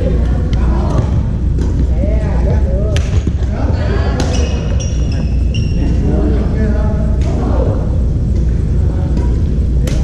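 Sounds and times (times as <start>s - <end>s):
players' voices: 0.0s - 10.0s
sneakers squeaking on gym floor: 4.0s - 6.1s.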